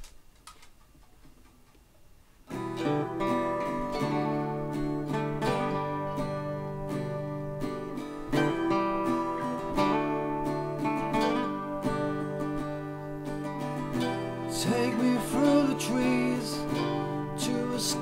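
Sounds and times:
acoustic guitar chords: 2.5s - 18.0s.

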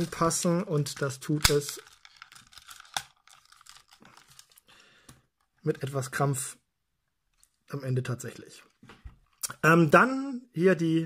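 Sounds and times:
plastic toy parts clicking: 0.9s - 4.6s.

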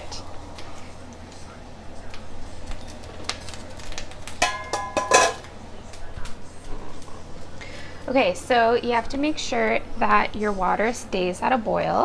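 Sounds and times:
ringing metal lid clangs: 4.4s - 5.4s.

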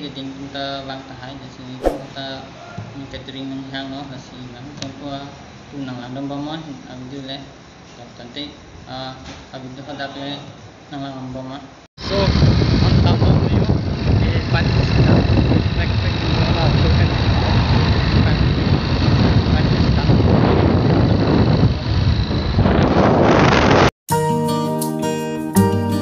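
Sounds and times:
wind buffeting microphone: 12.0s - 23.9s
acoustic guitar music: 24.1s - 26.0s.

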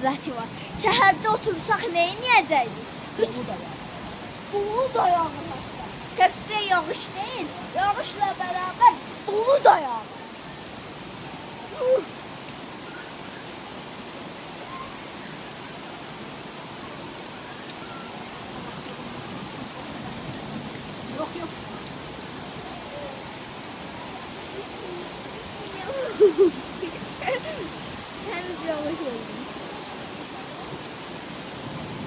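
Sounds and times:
rain and hail on leaves: 0.0s - 32.0s
river rushing: 0.0s - 32.0s.

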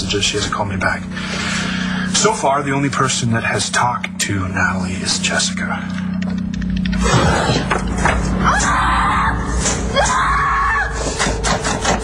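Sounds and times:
door creaking: 6.2s - 10.5s.

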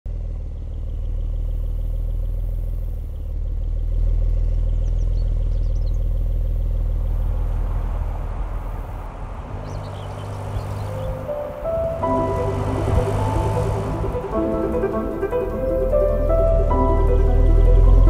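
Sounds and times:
car engine running: 0.1s - 18.0s
faint bird chirps: 0.6s - 7.3s.

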